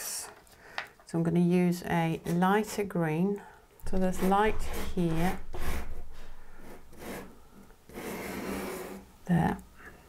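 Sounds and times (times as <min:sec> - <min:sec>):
pastel stick rubbing on paper: 0:03.9 - 0:07.3.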